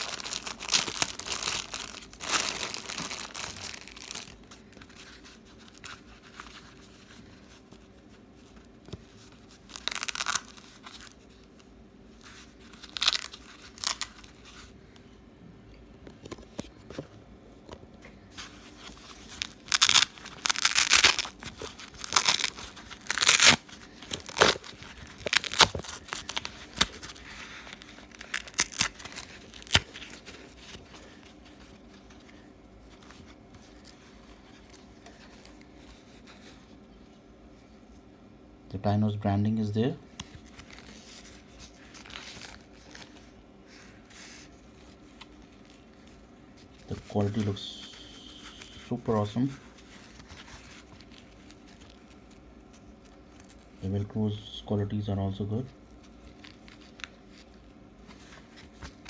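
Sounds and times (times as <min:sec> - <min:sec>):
velcro straps ripping apart: 0:00.0 - 0:04.4, 0:09.6 - 0:11.2, 0:12.7 - 0:14.4, 0:18.8 - 0:30.8
plastic packet crinkling: 0:00.0 - 0:06.8, 0:09.5 - 0:11.6, 0:12.3 - 0:14.7, 0:18.7 - 0:32.3, 0:40.2 - 0:43.3, 0:44.2 - 0:53.8.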